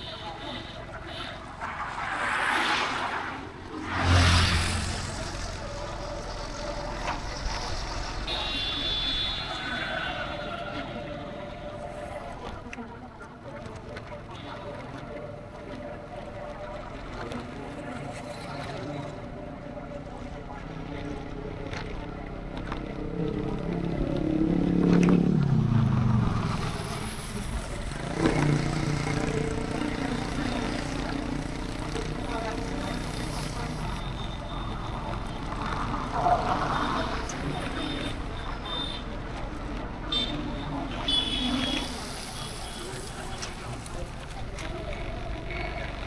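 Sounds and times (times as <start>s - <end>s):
road and wind noise: 0.0s - 46.0s
motorcycle passing by: 1.8s - 6.8s, 22.9s - 34.1s.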